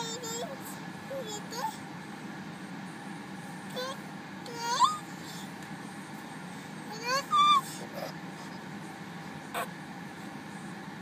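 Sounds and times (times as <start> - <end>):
car cabin hum: 0.0 - 11.0
toddler calling: 6.9 - 8.6, 9.5 - 9.8.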